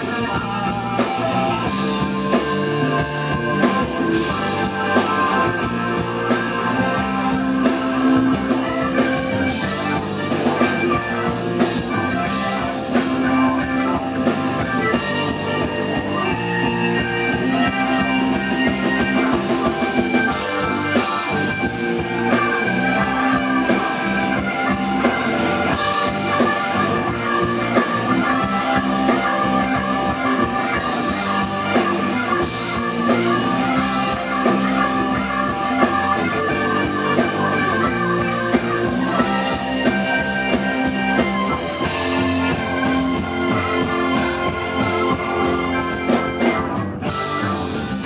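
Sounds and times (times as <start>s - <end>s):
bass guitar: 0.0s - 48.0s
drum kit: 0.0s - 48.0s
electric guitar: 0.0s - 48.0s.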